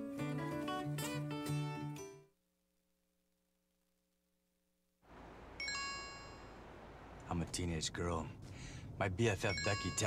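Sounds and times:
high ringing tones: 0:05.6 - 0:06.8, 0:09.4 - 0:10.0.

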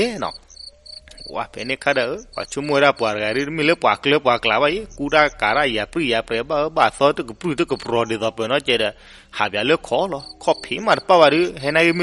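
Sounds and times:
person narrating: 0:00.0 - 0:00.4, 0:01.1 - 0:08.8, 0:09.4 - 0:12.0
crickets chirping: 0:00.0 - 0:12.0.

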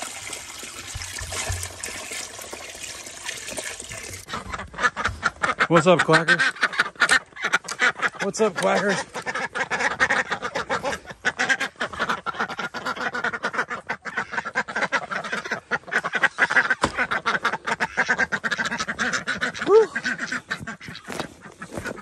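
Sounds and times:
ducks quacking: 0:04.2 - 0:22.0.

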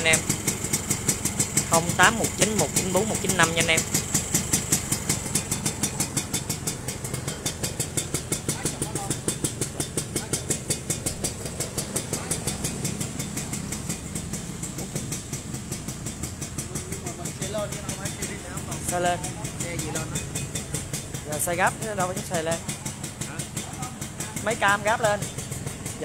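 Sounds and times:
two-stroke engine idling: 0:00.0 - 0:26.0.

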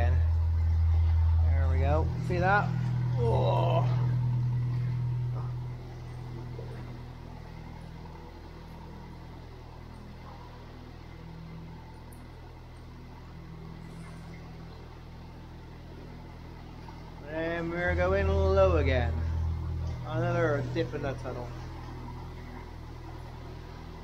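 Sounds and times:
diesel engine humming: 0:00.0 - 0:24.0.

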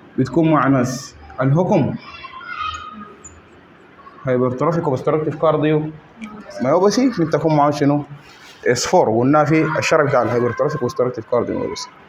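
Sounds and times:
marker squeaking on whiteboard: 0:02.1 - 0:05.5.

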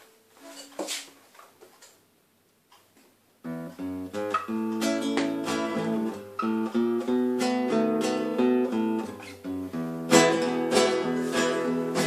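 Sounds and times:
fingers clicking on guitar: 0:03.5 - 0:07.0
acoustic guitar chord: 0:03.5 - 0:12.0.

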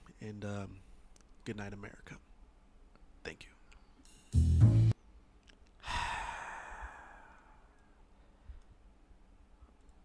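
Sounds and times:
man sighing: 0:05.8 - 0:07.9.

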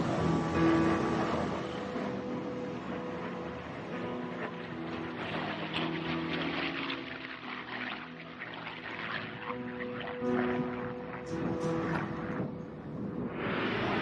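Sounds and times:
propeller plane engine passing: 0:00.0 - 0:14.0.

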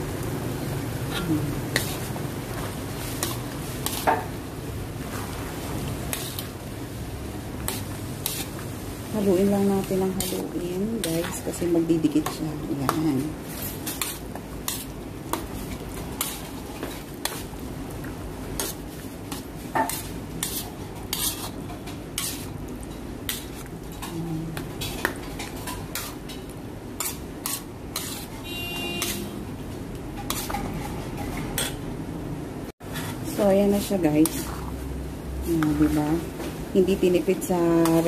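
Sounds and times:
spatula scraping a pan: 0:01.7 - 0:04.3, 0:05.1 - 0:06.6, 0:07.6 - 0:17.5, 0:18.6 - 0:24.1, 0:24.8 - 0:29.4, 0:30.2 - 0:31.8, 0:32.8 - 0:34.8.

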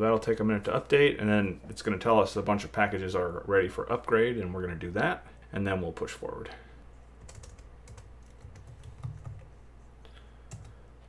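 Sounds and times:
laptop keyboard typing: 0:07.2 - 0:09.6, 0:10.5 - 0:10.8.

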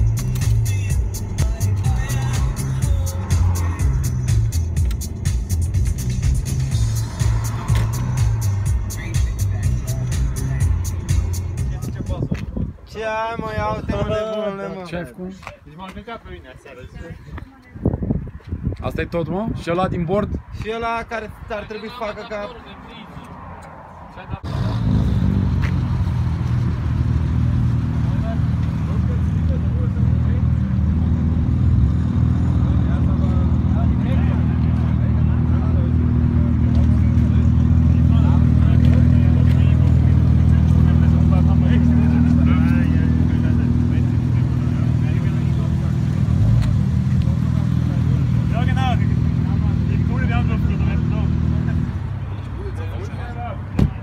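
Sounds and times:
car engine idling: 0:00.0 - 0:12.2, 0:26.0 - 0:53.0.

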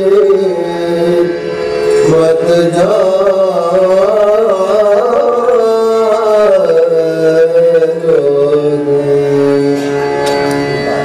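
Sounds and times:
man singing long note: 0:00.0 - 0:10.0
harmonium and tanpura drone: 0:00.0 - 0:11.0.

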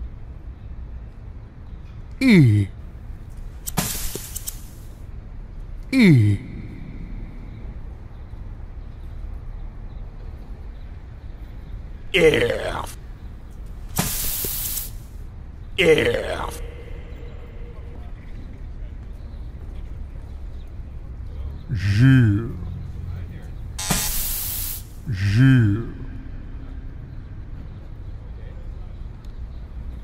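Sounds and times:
hissing spray-like poof burst: 0:03.7 - 0:04.9, 0:14.0 - 0:15.1, 0:23.8 - 0:25.0.

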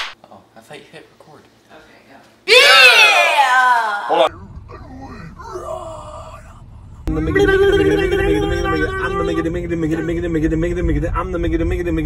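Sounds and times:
car interior rumble: 0:04.3 - 0:12.0.

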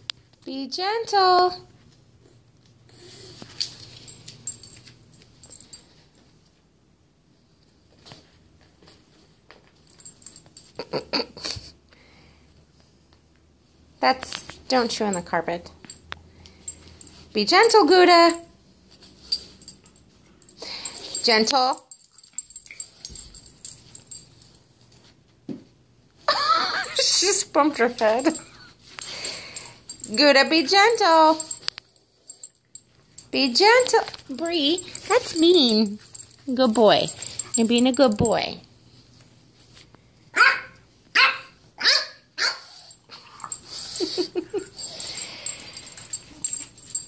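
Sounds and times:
dog claws clicking on floor: 0:28.0 - 0:38.4
dog breathing and snuffling: 0:34.8 - 0:37.6, 0:42.6 - 0:47.0.

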